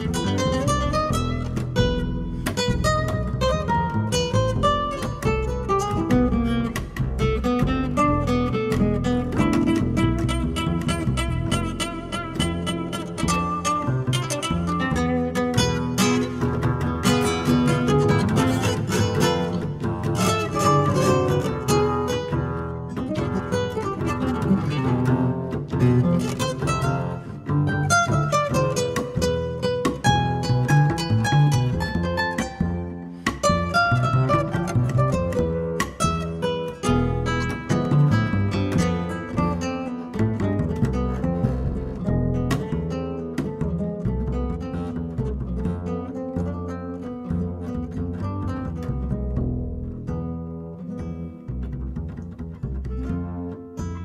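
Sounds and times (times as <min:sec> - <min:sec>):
bass line: 0:00.0 - 0:54.0
jazz guitar runs: 0:00.0 - 0:54.0.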